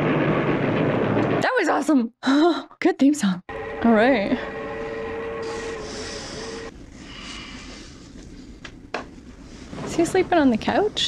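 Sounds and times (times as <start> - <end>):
steady held tone: 3.5 - 6.7.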